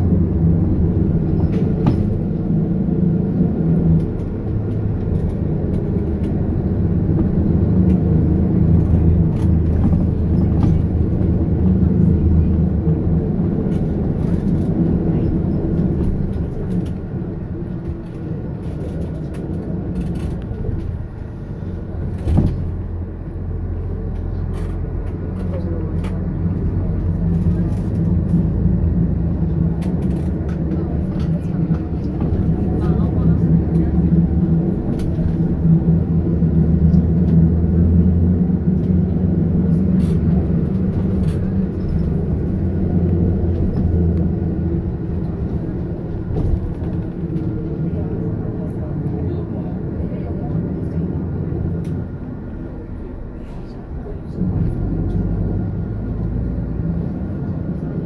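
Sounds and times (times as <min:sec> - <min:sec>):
bus engine and road drone: 0:00.0 - 0:58.0.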